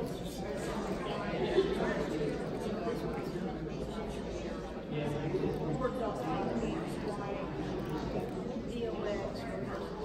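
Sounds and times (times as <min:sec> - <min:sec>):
crowd of people talking: 0:00.0 - 0:10.0.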